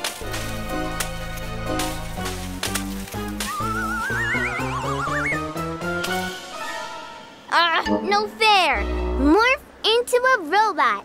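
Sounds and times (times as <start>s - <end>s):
playful cartoon music: 0.0s - 9.7s
wobbling rising tones: 3.5s - 5.6s.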